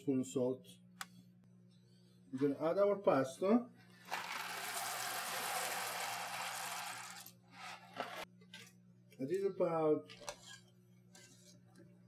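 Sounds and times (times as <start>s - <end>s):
dry pasta pouring into a pot: 4.1s - 7.3s.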